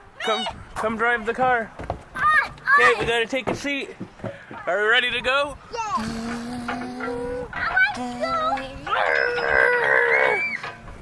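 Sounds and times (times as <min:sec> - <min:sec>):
man's drawn-out vocal cry: 0:06.0 - 0:10.6.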